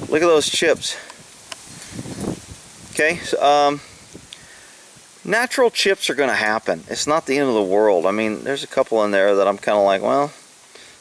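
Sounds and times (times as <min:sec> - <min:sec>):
wind rustling past microphone: 0:00.0 - 0:08.5
faint click: 0:04.3 - 0:04.5.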